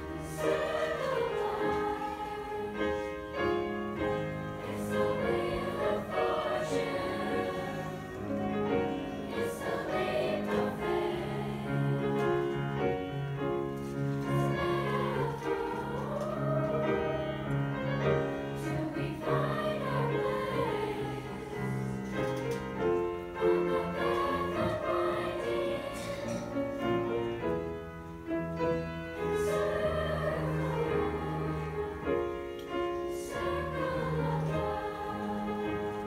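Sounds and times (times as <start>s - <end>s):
children's choir singing: 0.0s - 36.0s.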